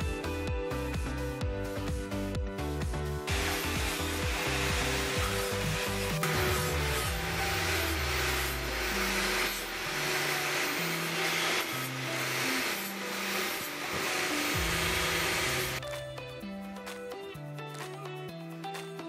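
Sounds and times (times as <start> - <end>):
background music with bass line: 0.0 - 11.2, 13.8 - 19.0
angle grinder grinding metal: 3.3 - 15.8.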